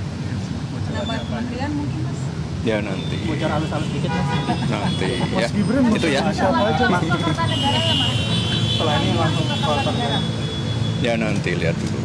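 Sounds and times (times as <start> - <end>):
reporters talking over one another: 0.8 - 11.8.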